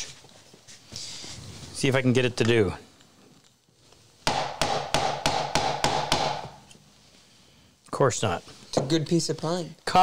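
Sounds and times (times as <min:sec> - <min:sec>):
mallet striking chisel: 0:04.3 - 0:06.5.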